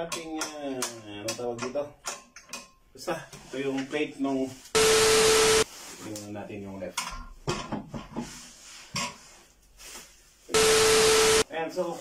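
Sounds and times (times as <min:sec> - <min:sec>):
steady beep: 0:04.8 - 0:05.6, 0:10.6 - 0:11.4
plastic wrapping rustling: 0:05.6 - 0:06.8, 0:08.3 - 0:10.5.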